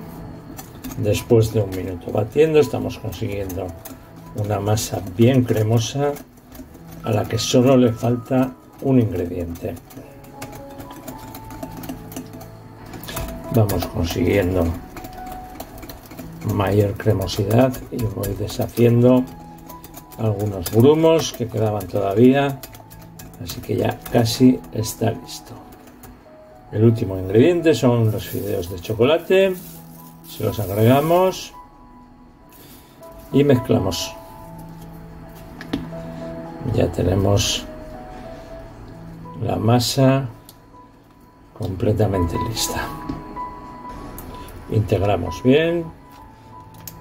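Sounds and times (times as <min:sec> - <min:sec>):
soft background music: 0:00.0 - 0:47.0
whisk clicking against glass bowl: 0:00.6 - 0:26.2, 0:26.9 - 0:31.6
batter swishing: 0:27.1 - 0:31.6.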